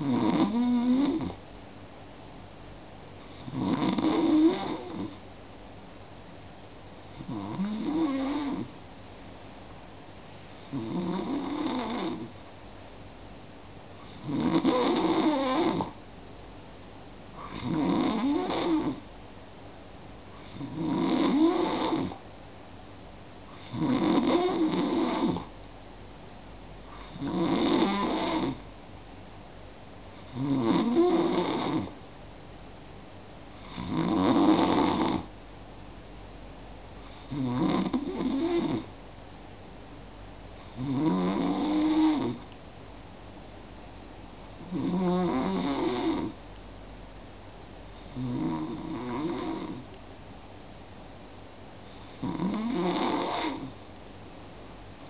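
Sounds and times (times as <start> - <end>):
person snoring: 0.0 - 1.4, 3.2 - 5.2, 7.0 - 8.8, 10.6 - 12.4, 14.0 - 16.0, 17.4 - 19.0, 20.4 - 22.2, 23.5 - 25.5, 26.9 - 28.6, 30.2 - 32.0, 33.6 - 35.3, 37.0 - 38.9, 40.6 - 42.5, 44.6 - 46.4, 48.0 - 49.9, 51.9 - 53.9.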